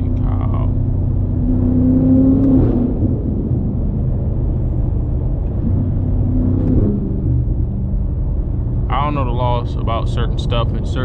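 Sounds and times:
car engine running: 0.0 - 11.0
road rumble: 0.0 - 11.0.

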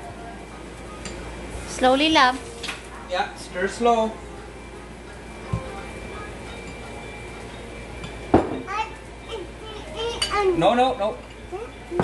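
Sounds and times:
toddler babbling: 8.7 - 10.6, 11.5 - 11.8.

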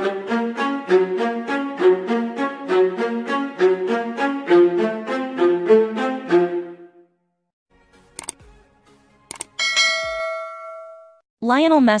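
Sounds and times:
short click: 8.2 - 8.4, 9.3 - 9.5
bell-like ding: 9.6 - 11.2.

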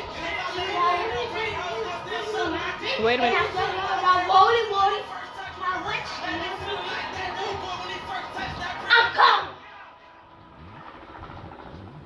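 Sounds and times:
girl rapping: 0.0 - 9.6.

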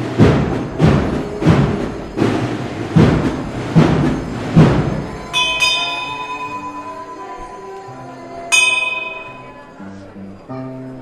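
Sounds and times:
high-pitched bell ringing: 5.3 - 9.8.

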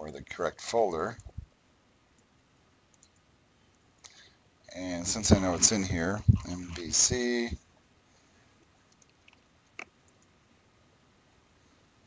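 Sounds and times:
faint computer mouse clicks: 2.9 - 3.2, 8.9 - 10.3.

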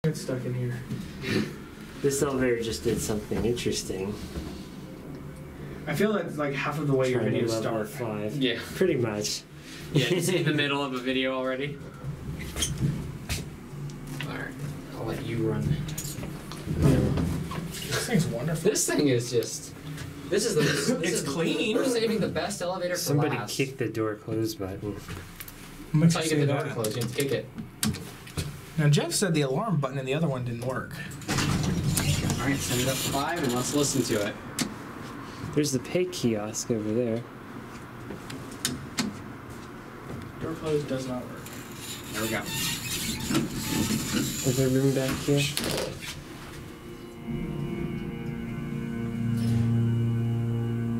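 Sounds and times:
low steady hum: 43.2 - 50.9.

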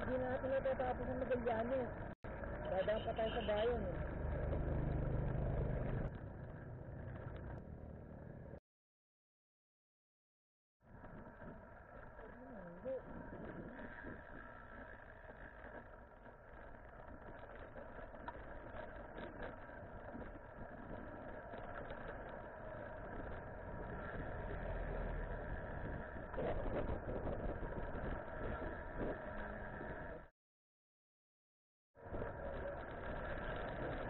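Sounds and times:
motor vehicle engines running: 0.0 - 8.6, 10.9 - 30.3, 32.0 - 34.0
road traffic noise: 0.0 - 8.6, 11.0 - 30.3.

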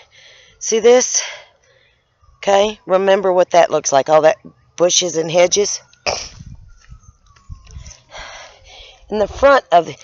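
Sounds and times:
wind rumbling on microphone: 5.5 - 9.7
microphone handling noise: 6.1 - 8.0.

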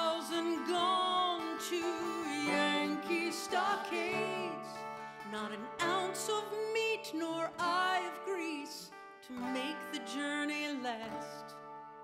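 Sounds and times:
twelve-string guitar chords: 0.0 - 12.0
woman singing a folk ballad: 0.0 - 12.0.

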